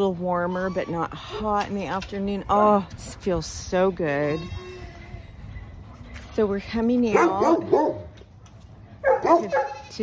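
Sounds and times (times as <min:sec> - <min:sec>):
goat bleating: 0:04.2 - 0:05.4, 0:09.4 - 0:10.0.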